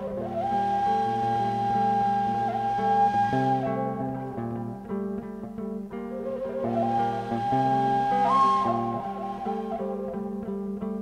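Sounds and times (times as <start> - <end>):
high flute-like note: 0.0 - 4.9, 6.1 - 10.6
lower guitar notes: 0.0 - 11.0.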